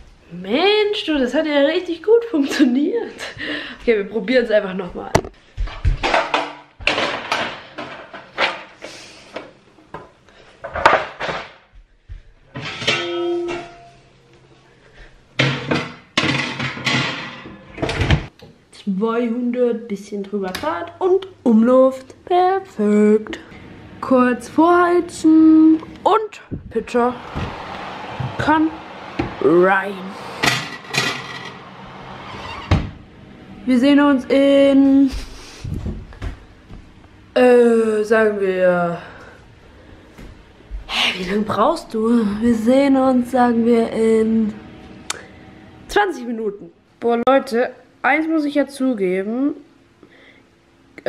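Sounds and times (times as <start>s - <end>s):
oven fan humming: 12.1s - 51.0s
oven door shutting: 30.3s - 33.1s.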